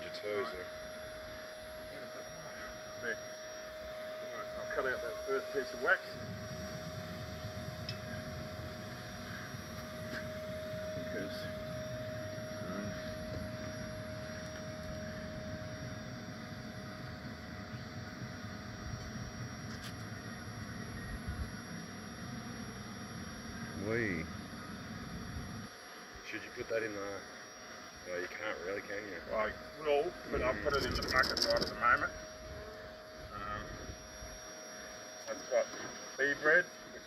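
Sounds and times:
steady higher hum: 0:00.0 - 0:37.0
bees buzzing: 0:01.3 - 0:15.6.

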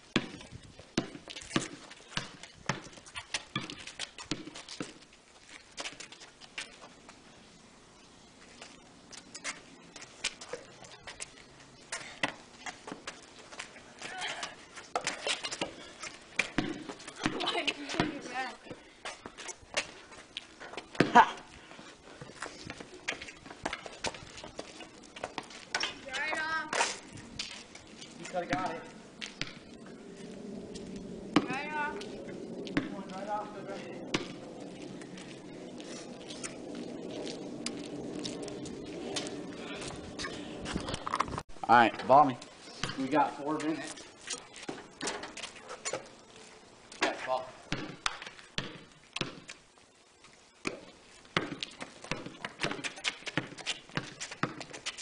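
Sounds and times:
basketball bouncing on concrete: 0:00.1 - 0:05.0, 0:14.0 - 0:19.9, 0:20.7 - 0:21.4, 0:22.7 - 0:27.5, 0:28.3 - 0:29.6, 0:31.3 - 0:32.1, 0:32.7 - 0:34.5, 0:42.8 - 0:43.9, 0:47.0 - 0:49.5, 0:50.6 - 0:55.0
steady low noise: 0:27.0 - 0:41.7.

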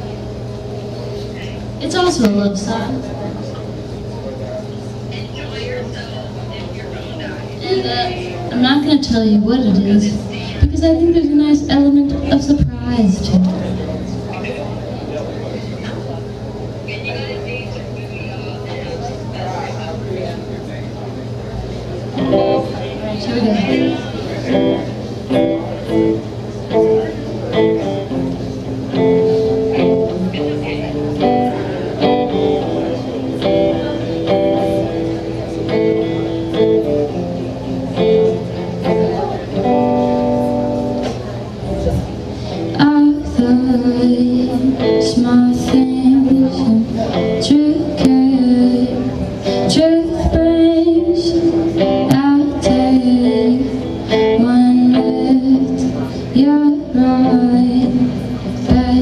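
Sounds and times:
clean electric guitar: 0:00.0 - 0:59.0
woman singing: 0:42.7 - 0:59.0.

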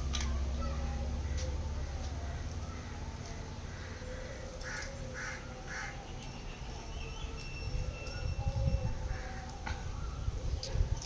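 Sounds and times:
crow cawing: 0:03.7 - 0:06.0.

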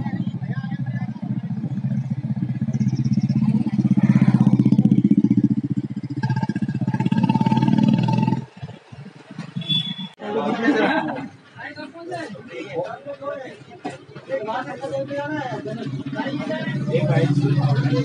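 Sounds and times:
motorcycle engine running: 0:00.0 - 0:09.9.

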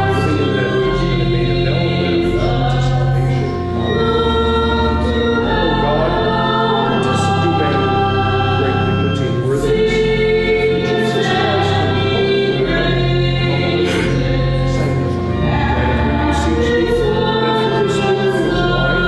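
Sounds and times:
sustained low accompanying notes: 0:00.0 - 0:19.0
voices singing a hymn: 0:00.0 - 0:19.0.

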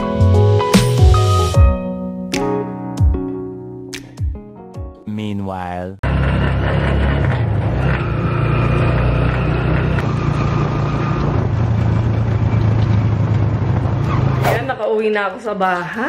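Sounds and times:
vehicle engine and road noise: 0:06.0 - 0:14.9.

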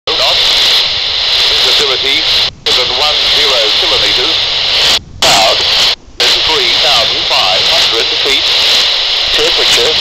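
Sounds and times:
steady radio hiss: 0:00.1 - 0:10.0
voice over radio: 0:00.1 - 0:10.0.

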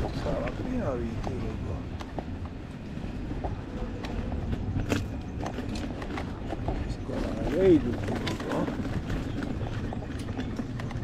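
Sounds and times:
light clicks from bumps: 0:00.0 - 0:11.0
tyre rumble on dirt path: 0:03.2 - 0:11.0.

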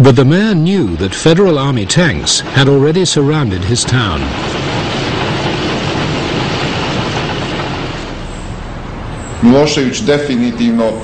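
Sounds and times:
tank engine noise: 0:00.0 - 0:11.0
tank tracks clattering: 0:00.3 - 0:08.6.

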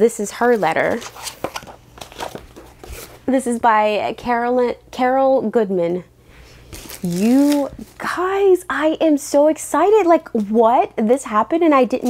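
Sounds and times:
paper rustling: 0:00.4 - 0:03.2.

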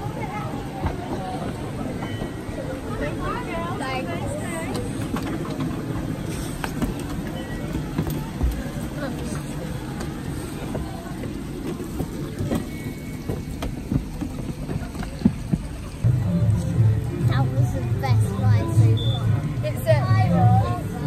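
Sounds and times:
footsteps on wooden planks: 0:10.0 - 0:16.0
steady low rumble: 0:15.8 - 0:21.0.

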